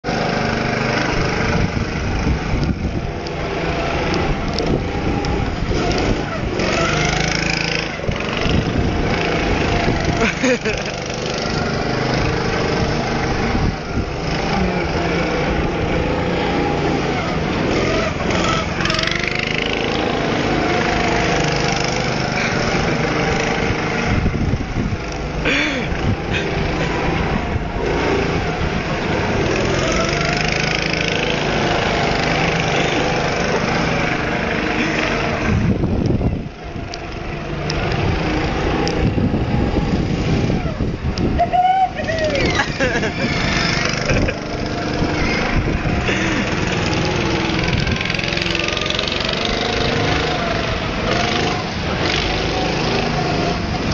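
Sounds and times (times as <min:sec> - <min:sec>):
go-kart engines racing: 0:00.0 - 0:53.9.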